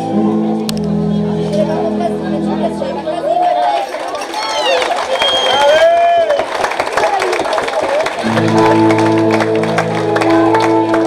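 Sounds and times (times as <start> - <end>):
sustained acoustic chord: 0.0 - 3.8, 8.2 - 11.0
audience voices calling out: 0.0 - 11.0
scattered clapping: 3.7 - 11.0.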